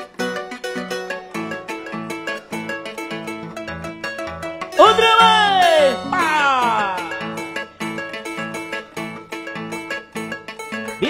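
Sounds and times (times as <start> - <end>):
harp playing plucked notes: 0.0 - 11.0
bass line: 4.8 - 7.6.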